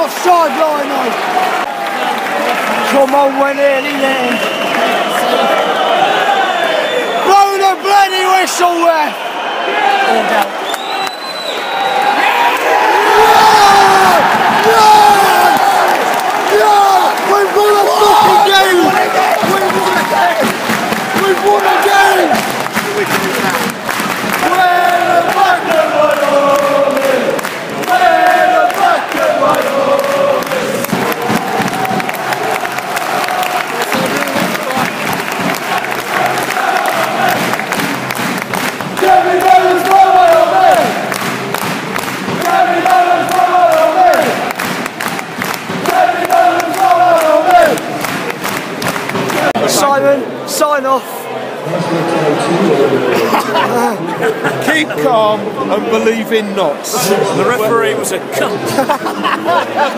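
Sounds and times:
football crowd singing chants: 0:12.8 - 0:49.7.

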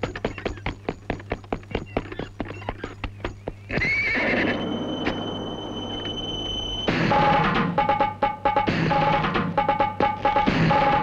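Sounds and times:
horse hooves clip-clopping: 0:00.0 - 0:05.2
horse whinnying: 0:03.7 - 0:05.2.

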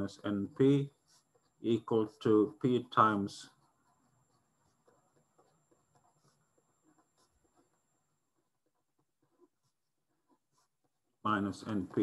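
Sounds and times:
pen scratching on paper: 0:00.0 - 0:11.1.

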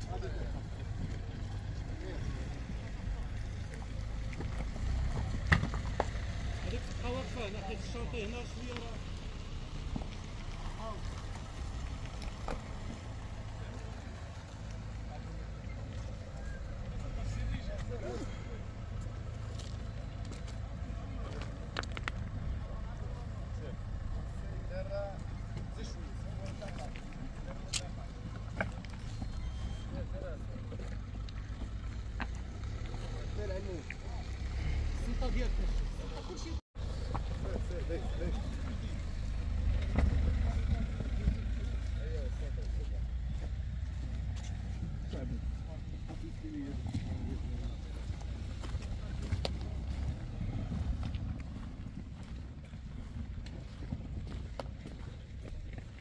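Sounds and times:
distant voices: 0:00.0 - 0:56.0
steady low rumble: 0:36.8 - 0:56.0
wind rumbling on microphone: 0:46.7 - 0:56.0.

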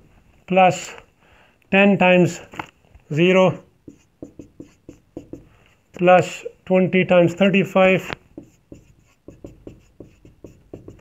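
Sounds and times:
marker writing on whiteboard: 0:03.5 - 0:06.5, 0:07.2 - 0:11.0.

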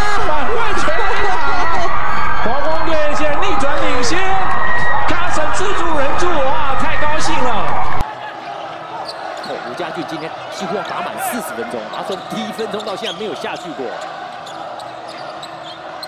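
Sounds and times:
arena crowd noise: 0:00.0 - 0:16.0
crowd shouting and cheering: 0:00.0 - 0:16.0.

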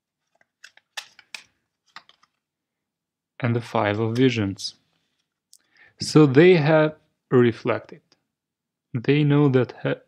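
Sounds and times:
cards snapping and flicking: 0:00.4 - 0:02.3.

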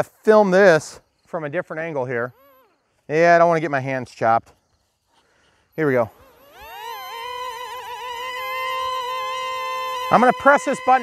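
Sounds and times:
electric motors and propellers whining: 0:02.1 - 0:03.1, 0:04.6 - 0:11.0.

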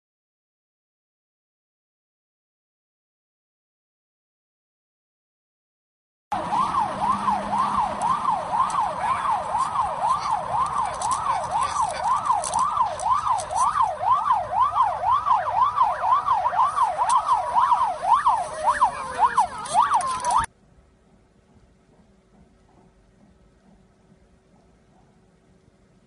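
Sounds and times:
falling siren tone: 0:06.3 - 0:20.5
police siren yelping: 0:06.3 - 0:20.5.

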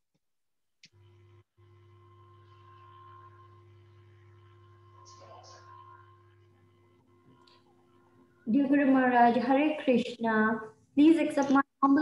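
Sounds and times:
faint electrical hum: 0:00.8 - 0:12.0.

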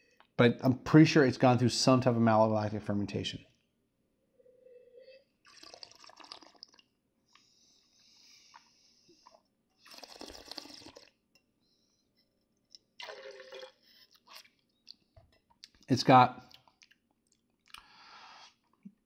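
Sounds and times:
person slurping wine: 0:04.4 - 0:06.8, 0:08.5 - 0:11.2, 0:13.0 - 0:14.6
spitting into metal cup: 0:09.8 - 0:11.2.

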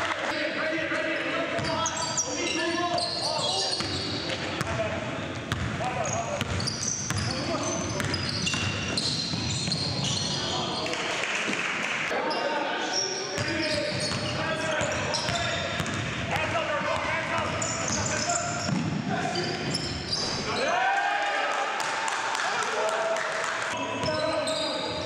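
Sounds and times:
shoe squeaks: 0:01.2 - 0:04.3, 0:06.0 - 0:10.9, 0:12.3 - 0:15.9, 0:17.4 - 0:20.7, 0:23.8 - 0:25.0.

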